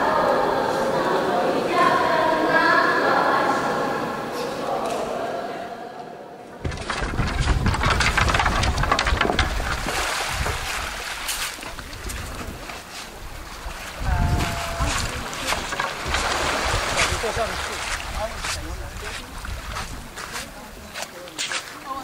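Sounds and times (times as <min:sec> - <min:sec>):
water sloshing around canoe: 0:08.4 - 0:21.9
small waves on pebble shore: 0:09.7 - 0:19.2
wind rumble on microphone: 0:11.6 - 0:20.9.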